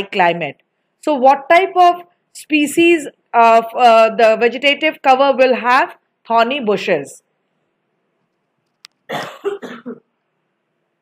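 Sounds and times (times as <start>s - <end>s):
woman coughing: 9.1s - 10.1s.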